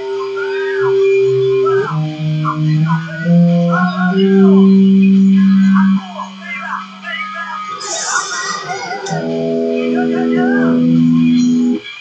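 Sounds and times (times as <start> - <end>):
guitar notes ringing: 0.0 - 12.0.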